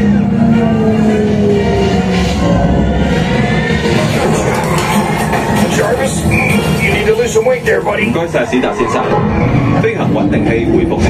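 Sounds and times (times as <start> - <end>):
action film music: 0.0 - 11.0.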